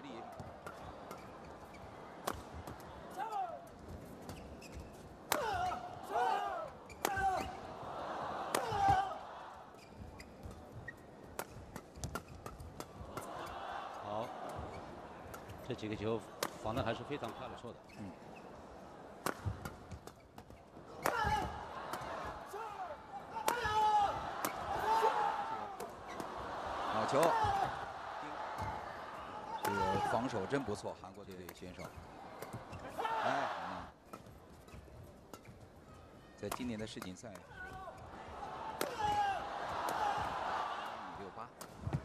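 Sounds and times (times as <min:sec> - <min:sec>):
racket striking shuttlecock: 0:02.2 - 0:02.6, 0:08.5 - 0:09.0, 0:16.4 - 0:16.6, 0:19.2 - 0:22.1, 0:38.8 - 0:39.1
racket hitting shuttlecock: 0:02.2 - 0:02.8, 0:06.9 - 0:07.6, 0:08.5 - 0:09.0, 0:11.3 - 0:13.5, 0:16.4 - 0:16.8, 0:19.2 - 0:22.7, 0:23.4 - 0:26.4, 0:38.7 - 0:39.2
crowd voices: 0:05.2 - 0:10.0, 0:12.8 - 0:20.0, 0:20.7 - 0:31.0, 0:37.6 - 0:42.0.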